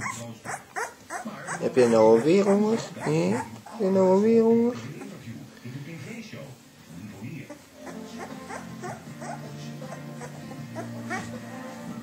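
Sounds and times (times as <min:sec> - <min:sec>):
puppies squeaking and whimpering: 0:00.0 - 0:05.2, 0:07.4 - 0:11.7
background music: 0:07.7 - 0:12.0.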